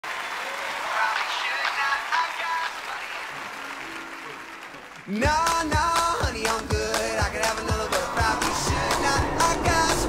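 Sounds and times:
audience applause: 0.0 - 6.2, 7.2 - 10.0
music: 1.0 - 10.0.

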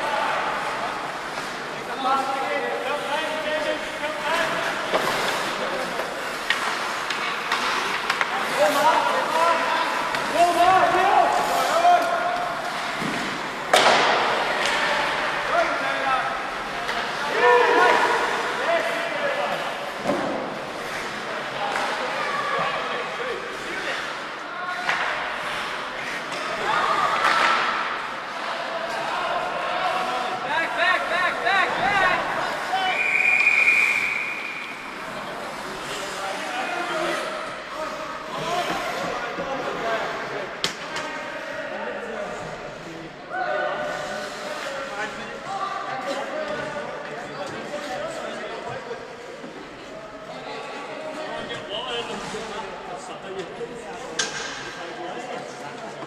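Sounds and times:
puck slamming against boards: 12.9 - 14.8
referee's whistle: 32.9 - 34.8.

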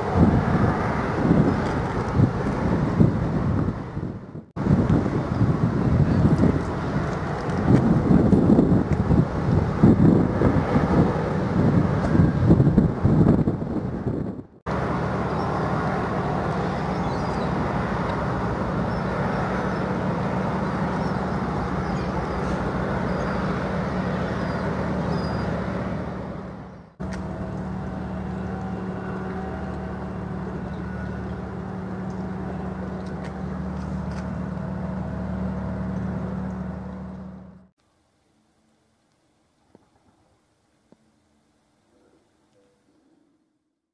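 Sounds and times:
wind buffeting microphone: 0.0 - 37.3
constant low hum: 0.0 - 37.7
ship diesel engines droning: 0.0 - 37.7.

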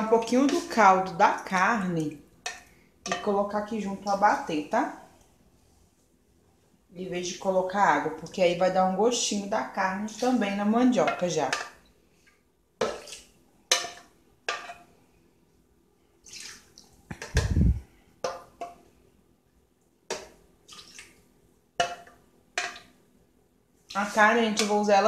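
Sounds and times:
liquid splashing: 16.2 - 17.6, 20.2 - 21.2.

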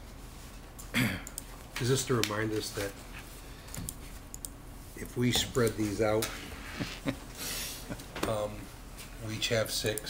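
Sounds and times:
low room noise: 0.0 - 10.0
computer keys clicking: 3.7 - 4.6.

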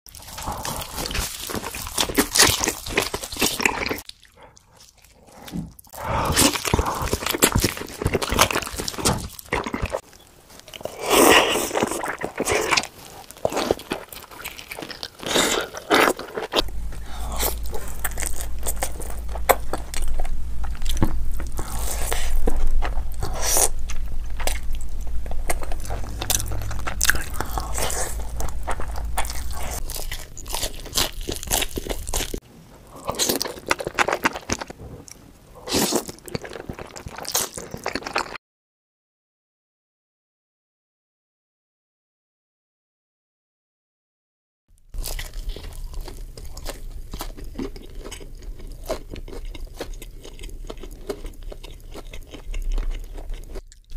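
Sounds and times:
crunchy bites and chewing: 0.1 - 38.4, 44.9 - 53.9
low steady hum: 16.2 - 34.0.

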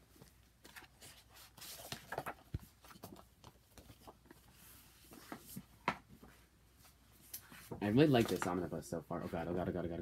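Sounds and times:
book pages rustling: 0.0 - 9.6.

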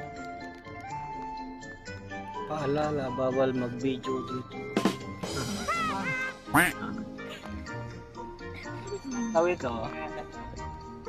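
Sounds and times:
background music: 0.0 - 11.0
duck quack sound effect: 5.9 - 6.8.

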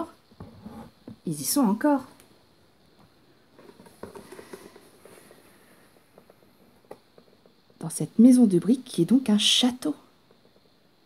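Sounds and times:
faint rustling: 3.1 - 7.8.

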